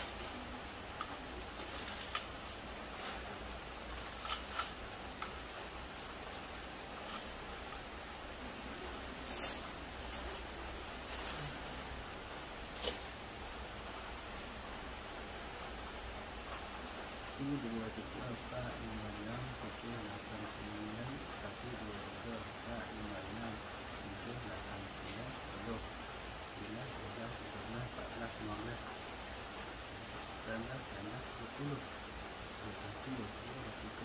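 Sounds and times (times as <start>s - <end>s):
coins clinking: 0.0s - 7.9s, 8.6s - 11.7s
low background hiss: 0.0s - 34.0s.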